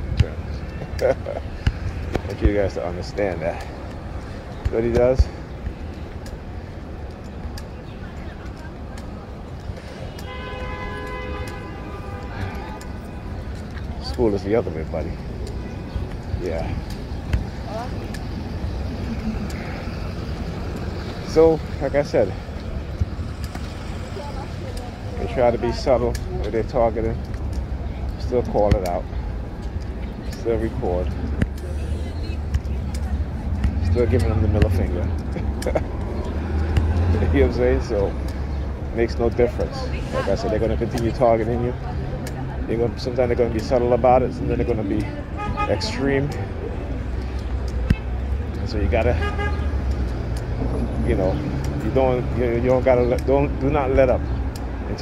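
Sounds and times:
rumble of passing vehicles: 0.0 - 55.0.

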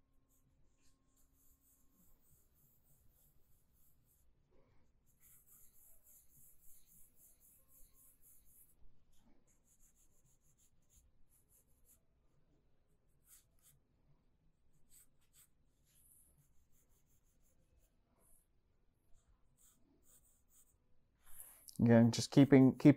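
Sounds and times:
pencil scratching on paper: 0.2 - 12.2, 12.8 - 13.9, 14.5 - 18.5, 19.1 - 21.6.

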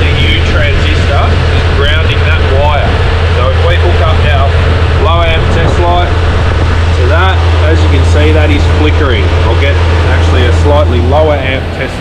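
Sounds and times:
man talking: 0.0 - 6.2, 6.9 - 12.0
low mechanical hum: 0.0 - 12.0.

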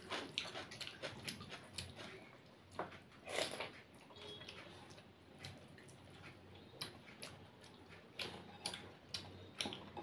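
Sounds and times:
wet eating clicks: 2.9 - 10.0.

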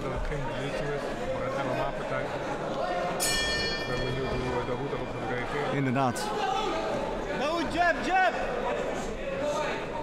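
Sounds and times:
murmur of voices: 0.0 - 10.0
ring bell ringing: 3.2 - 5.2.

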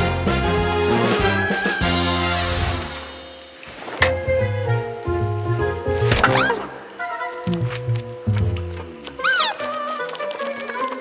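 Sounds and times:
cartoon background music: 0.0 - 3.3, 4.0 - 11.0
squeaky cartoon creature cry: 9.2 - 9.7.

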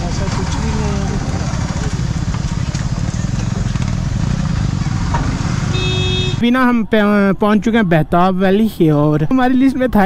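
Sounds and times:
motorcycle engine running at low revs: 0.0 - 6.4.

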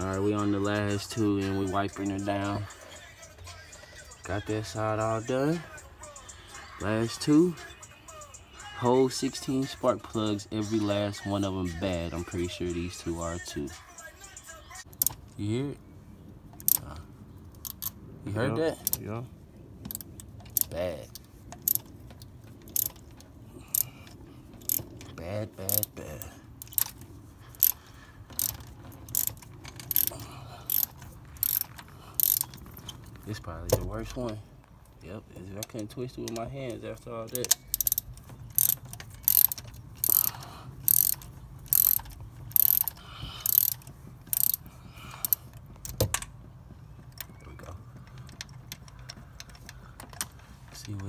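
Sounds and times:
ratchet wrench clicking: 14.9 - 15.3, 16.6 - 18.0, 19.8 - 34.4, 35.6 - 46.3.

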